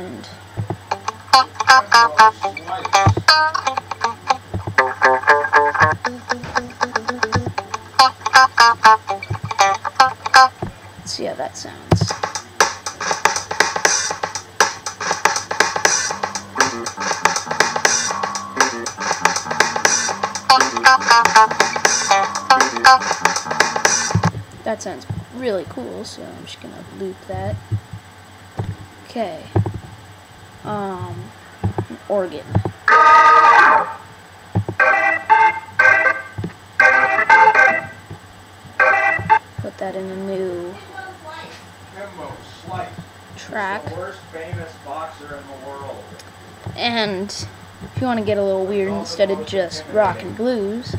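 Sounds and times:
low thumps: 0.5 - 10.8, 15.8 - 25.8, 27.2 - 28.9, 29.5 - 30.0, 30.8 - 32.9, 34.5 - 34.8, 36.3 - 36.6
choppy organ chords: 0.6 - 10.6, 12.1 - 24.4, 32.6 - 38.1, 38.7 - 39.6
funky electric guitar: 0.6 - 10.6, 15.0 - 24.4
drum kit beat: 0.6 - 10.7, 11.9 - 25.4, 27.3 - 28.8, 30.7 - 33.2, 34.6 - 38.2, 39.1 - 39.8
electric bass: 0.6 - 10.7, 16.0 - 24.5.

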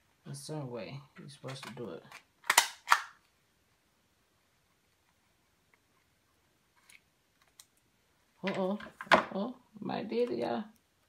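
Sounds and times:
tagging gun clicking: 1.6 - 3.2.

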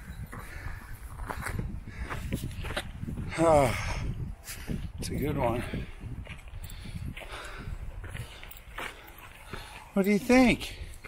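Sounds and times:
footsteps on gravel trail: 0.0 - 3.3, 4.4 - 11.0.

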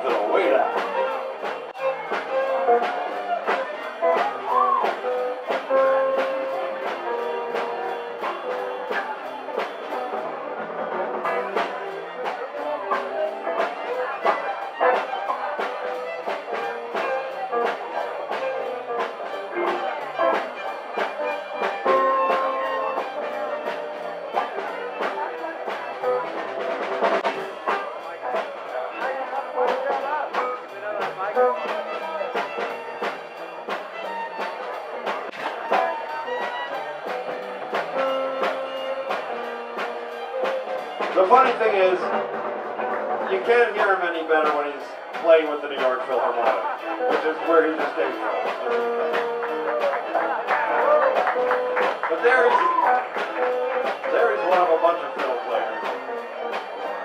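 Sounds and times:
live band playing shuffle: 0.0 - 57.0.

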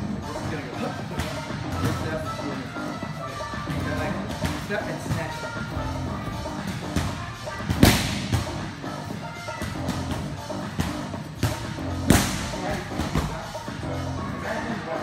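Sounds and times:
background music: 0.0 - 15.0
strikes smacking striking pads: 7.0 - 8.6, 9.6 - 13.4.

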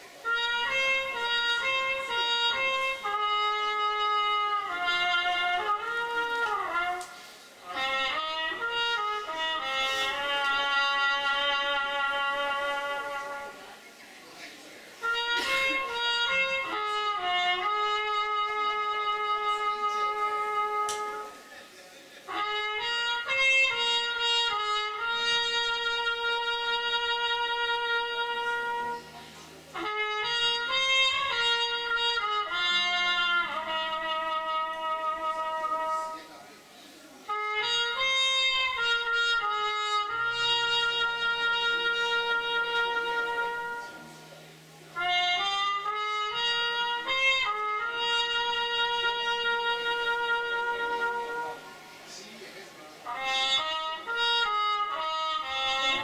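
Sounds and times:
live band accompaniment: 0.0 - 13.7, 15.0 - 21.5
trumpet playing slow melody: 0.0 - 14.0, 14.9 - 56.0.

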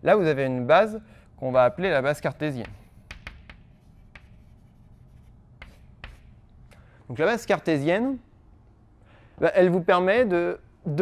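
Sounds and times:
chalk scratching on blackboard: 2.1 - 6.4.

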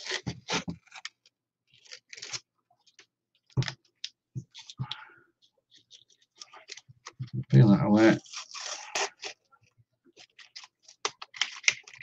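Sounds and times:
masking tape being peeled: 0.0 - 1.1, 1.7 - 2.4, 8.2 - 9.4.

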